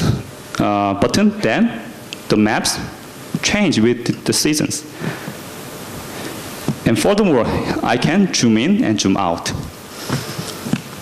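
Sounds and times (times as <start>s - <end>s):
microphone hiss: 0.0s - 11.0s
man saying a word: 6.9s - 8.3s.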